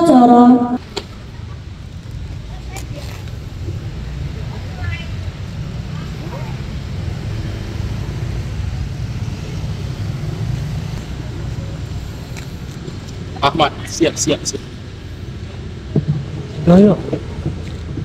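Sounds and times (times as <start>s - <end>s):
steady low outdoor rumble: 0.0s - 18.0s
faint children's voices: 2.3s - 3.4s, 4.3s - 6.8s.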